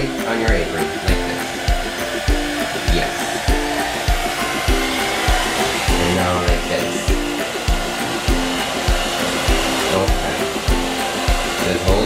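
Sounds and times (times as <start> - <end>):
hair dryer blowing: 0.0 - 12.0
music with steady beat: 0.0 - 12.0.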